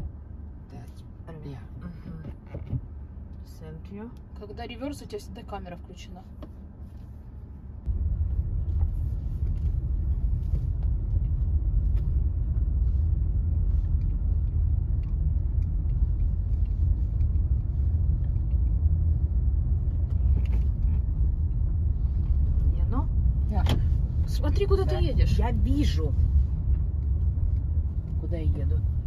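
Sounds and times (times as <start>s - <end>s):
car engine rumble from inside: 0.0s - 29.0s.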